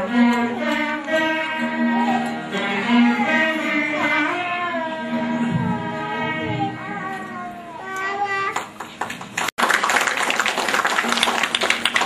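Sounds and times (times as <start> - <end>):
audience applauding: 8.6 - 12.0.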